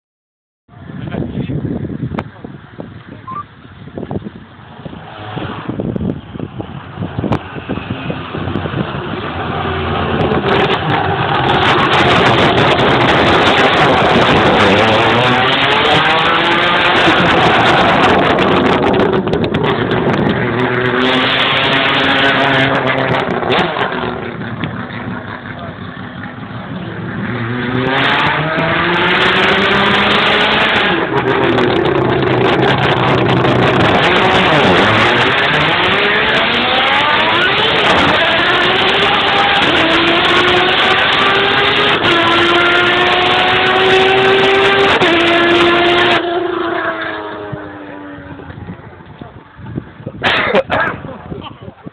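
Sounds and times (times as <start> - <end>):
rotary engine accelerating hard: 4.2 - 51.1.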